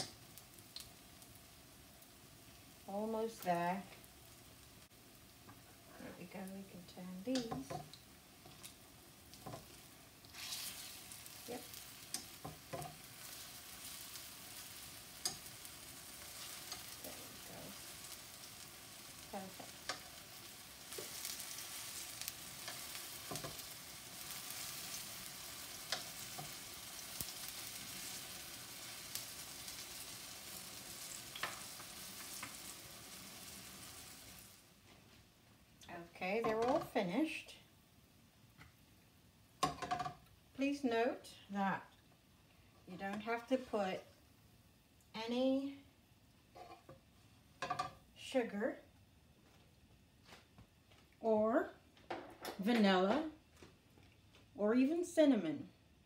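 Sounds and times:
fritters sizzling in hot oil: 0.0s - 37.5s
metal tongs clicking on pan: 15.2s - 15.5s, 19.8s - 20.1s.

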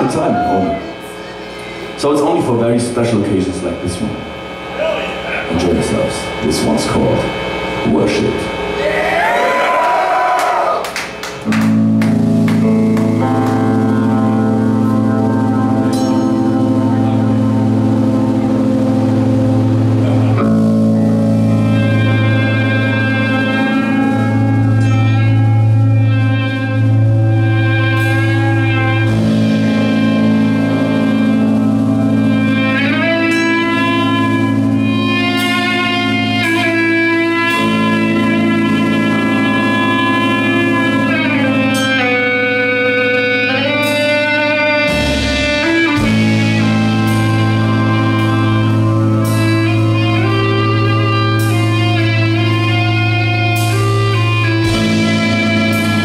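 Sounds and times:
bass: 0.0s - 56.0s
drums: 0.0s - 56.0s
electric guitar chords: 0.0s - 56.0s.

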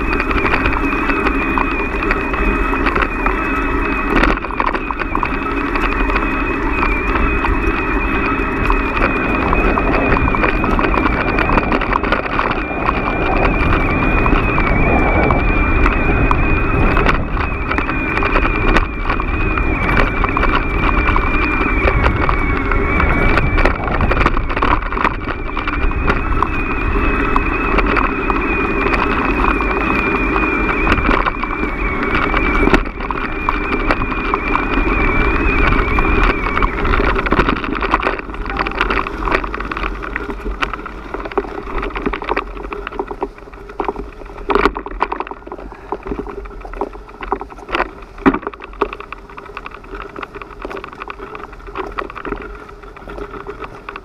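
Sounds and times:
bicycle rumbling on dirt track: 0.0s - 54.0s
high-pitched whine: 0.0s - 54.0s.

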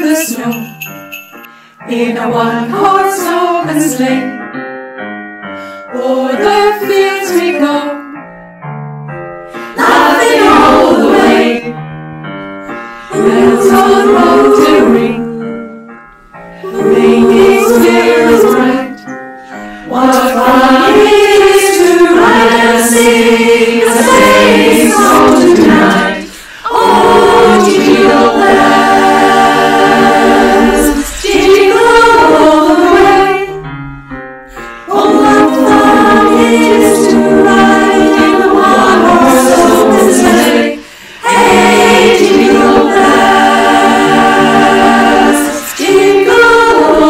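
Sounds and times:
women's choir singing: 0.0s - 0.8s, 1.8s - 4.4s, 5.9s - 8.1s, 9.7s - 11.8s, 13.1s - 15.9s, 16.6s - 33.7s, 34.8s - 47.0s.

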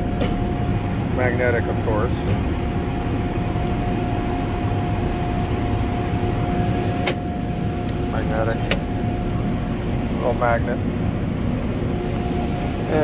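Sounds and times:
machinery drone with whine: 0.0s - 13.0s.

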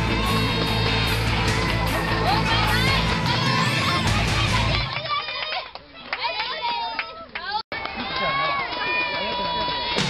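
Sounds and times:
children shouting and calling out: 2.1s - 7.2s.

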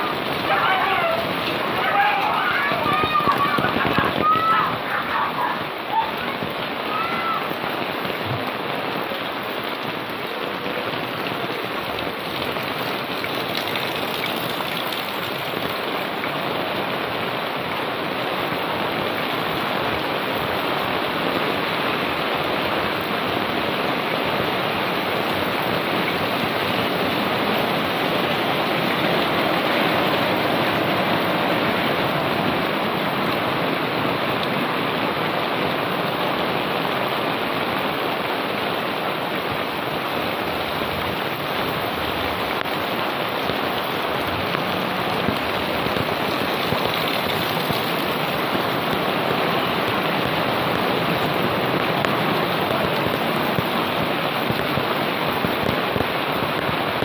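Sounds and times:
heavy rain drumming on umbrella: 0.0s - 57.0s
rain splashing on wet street: 0.0s - 57.0s.

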